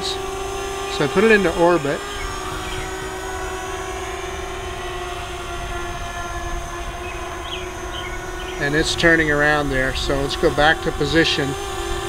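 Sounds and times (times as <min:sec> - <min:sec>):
quadcopter motors humming: 0:00.0 - 0:12.0
wind rumble on microphone: 0:00.0 - 0:12.0.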